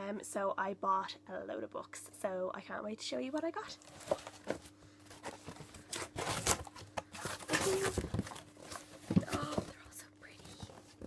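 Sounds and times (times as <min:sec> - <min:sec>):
cardboard box scraping and rustling: 0:03.8 - 0:09.7.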